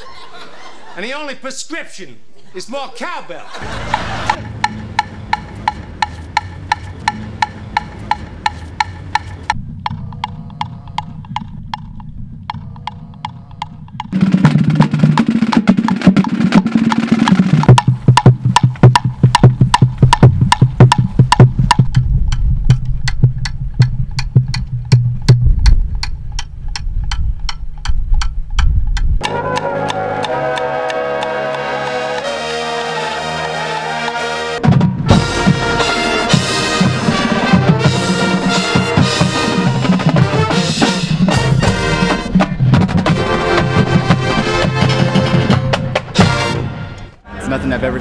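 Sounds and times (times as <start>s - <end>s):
brass horns: 3.6s - 4.6s, 29.2s - 47.4s
rock band playing: 3.6s - 9.6s, 29.2s - 47.2s
bass line: 3.6s - 16.3s, 17.2s - 47.4s
cowbell struck in steady beat: 3.8s - 11.4s, 17.6s - 25.5s.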